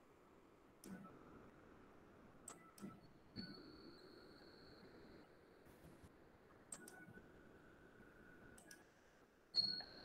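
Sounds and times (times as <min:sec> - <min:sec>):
faint clicks: 0:06.7 - 0:07.0, 0:08.6 - 0:08.9.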